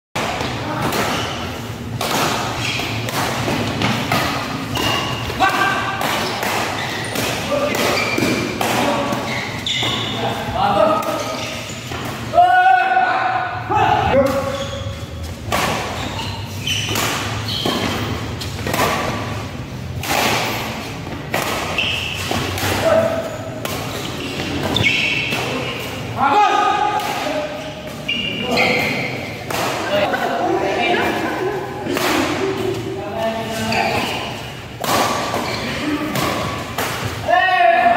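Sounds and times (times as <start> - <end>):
racket hitting shuttlecock: 0.2 - 10.1, 15.4 - 16.1, 16.7 - 25.9, 28.8 - 30.3, 31.0 - 32.8, 34.0 - 37.2
people calling out: 5.2 - 6.0.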